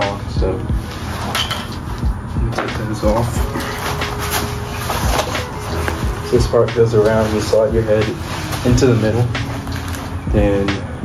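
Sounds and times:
fabric and straps rustling: 0.0 - 11.0.

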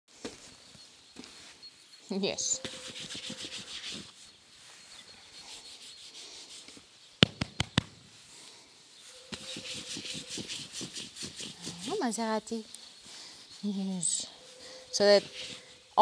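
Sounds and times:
hand rubbing horse coat: 2.4 - 6.9, 9.0 - 15.8
sharp clicks: 7.2 - 8.0.

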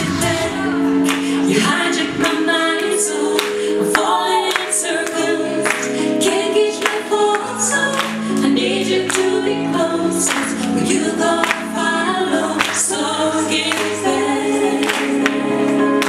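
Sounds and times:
instrumental backing track: 0.0 - 16.0
woman singing into microphone: 0.0 - 16.0.

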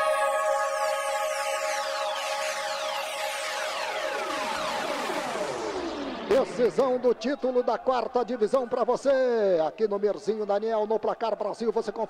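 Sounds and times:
electronic jingle sliding downward: 0.0 - 6.8.

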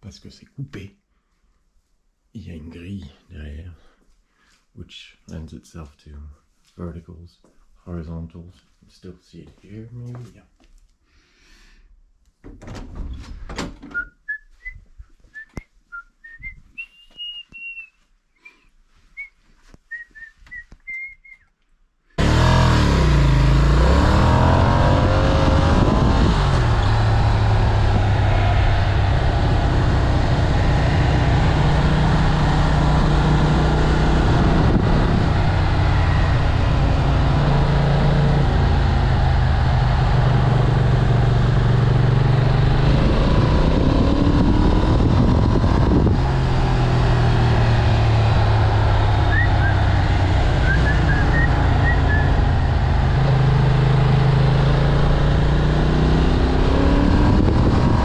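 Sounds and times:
person whistling a tune: 13.9 - 21.5, 49.3 - 49.8, 50.6 - 52.4
motorcycle engine riding along: 22.2 - 58.0
wind noise: 23.9 - 39.1, 40.2 - 53.4, 56.2 - 58.0.

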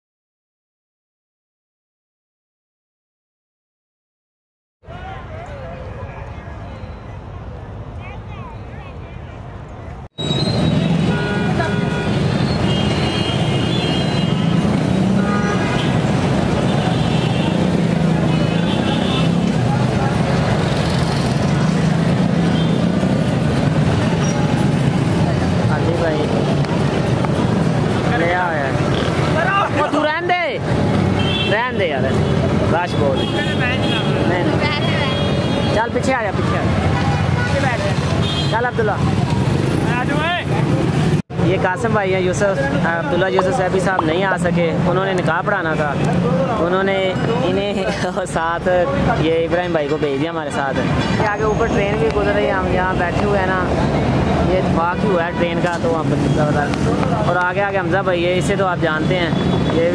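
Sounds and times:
road traffic rumble: 4.8 - 59.9
car horn toots: 10.3 - 16.0.

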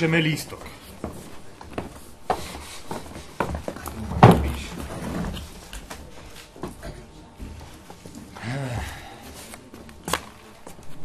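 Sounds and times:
footsteps on wooden stage: 0.6 - 8.3
knocks and prop handling: 3.4 - 7.0.

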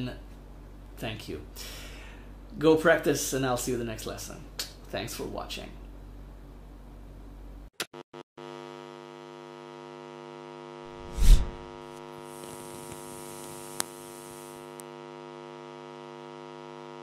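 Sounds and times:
electrical mains hum: 0.0 - 7.7, 10.9 - 17.0
loud whoosh: 10.9 - 11.7.

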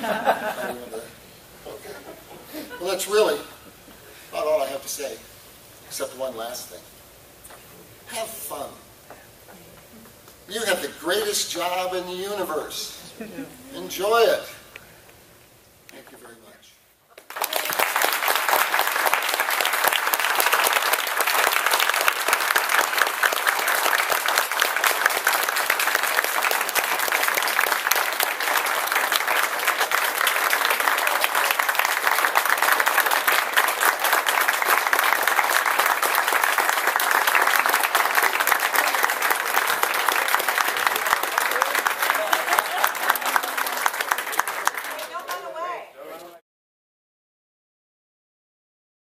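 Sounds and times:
audience applauding: 17.1 - 45.7.

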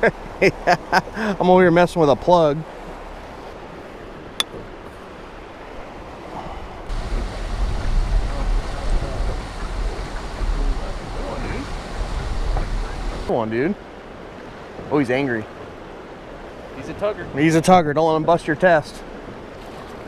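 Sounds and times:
rushing river water: 0.0 - 20.0
wind buffeting microphone: 3.6 - 13.3.

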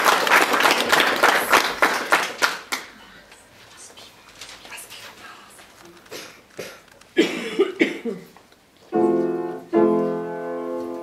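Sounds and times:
piano music: 8.9 - 11.0.

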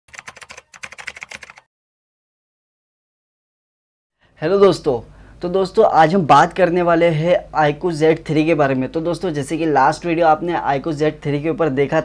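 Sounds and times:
rapid typing on keyboard: 0.1 - 1.7.

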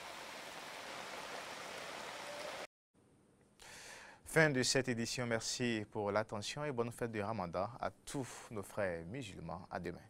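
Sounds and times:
floodwater rushing: 0.0 - 2.7
heavy rain: 0.0 - 2.7.

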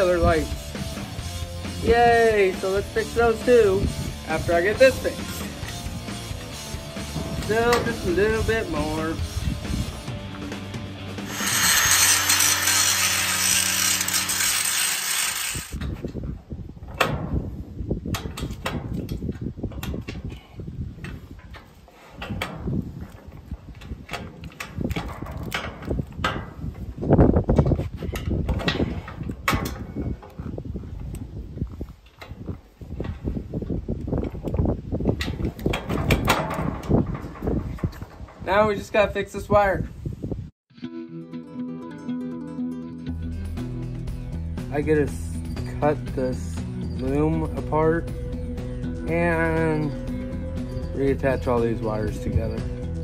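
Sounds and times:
loud steady whirring: 11.2 - 15.8
trailer jack cranked by hand: 11.2 - 16.0.

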